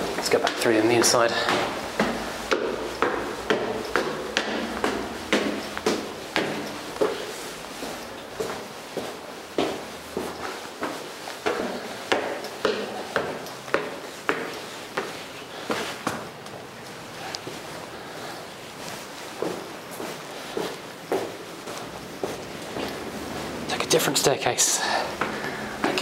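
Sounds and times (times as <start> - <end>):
footsteps on metal stairs: 0.0 - 26.0.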